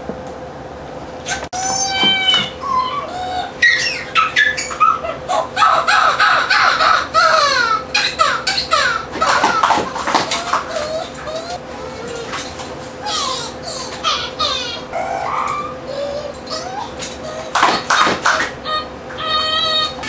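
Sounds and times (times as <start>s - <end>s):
faint steady hum: 0.0s - 20.0s
high-pitched squeaky squealing: 1.2s - 20.0s.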